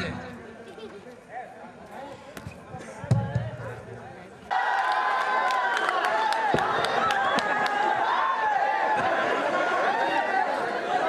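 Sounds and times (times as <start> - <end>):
faint voices in a hall: 0.0 - 4.6.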